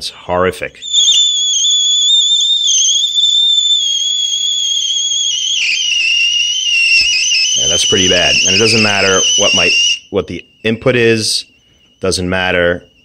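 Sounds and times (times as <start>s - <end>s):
radio receiver high-pitched howl: 0.8s - 10.0s.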